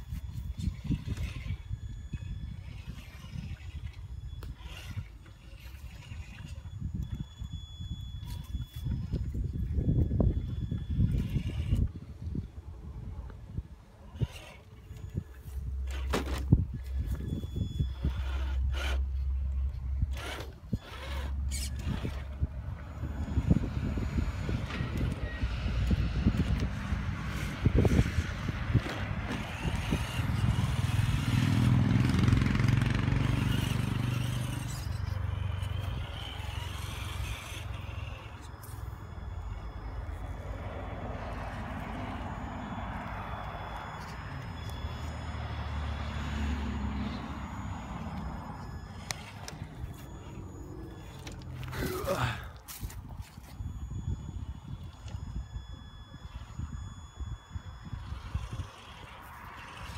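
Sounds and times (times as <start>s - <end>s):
electric motor and gears whirring: 0.0s - 59.9s
faint hum: 0.0s - 59.9s
tyres and chassis clicking: 0.0s - 59.9s.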